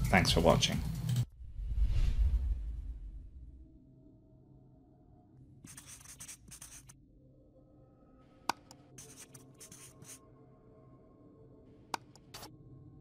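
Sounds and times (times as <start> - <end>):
marker scratching on board: 5.7 - 6.9, 8.5 - 10.2, 12.0 - 12.5.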